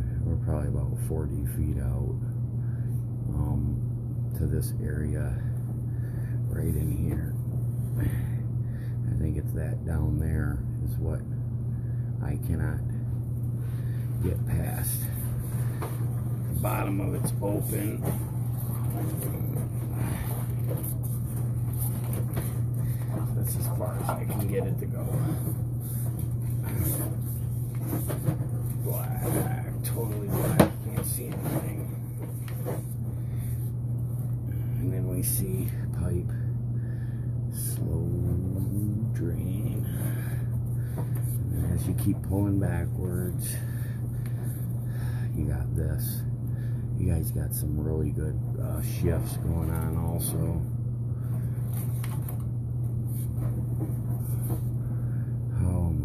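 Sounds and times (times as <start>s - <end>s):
steady low hum: 0.0s - 56.0s
knocks and rubbing in a pipe: 14.6s - 33.5s.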